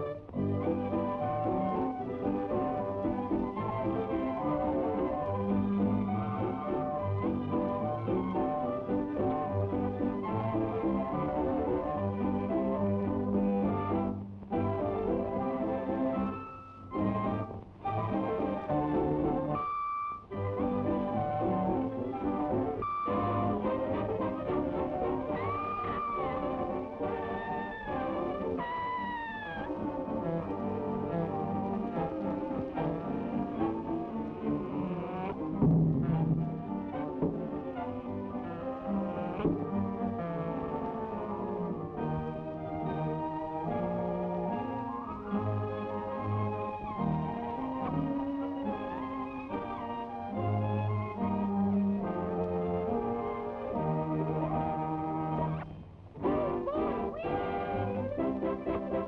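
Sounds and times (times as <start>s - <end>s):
orchestral cartoon music with brass: 0.0s - 59.0s.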